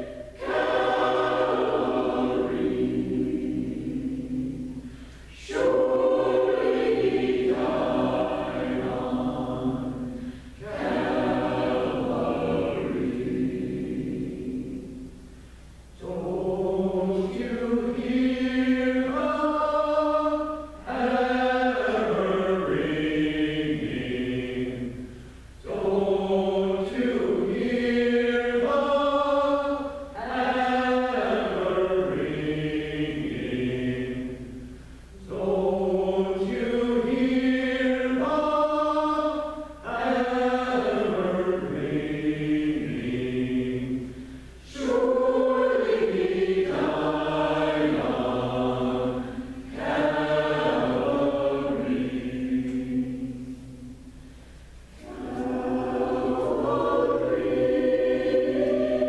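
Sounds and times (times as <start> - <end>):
mixed choir singing: 0.0 - 15.2, 16.0 - 54.1, 54.9 - 59.0.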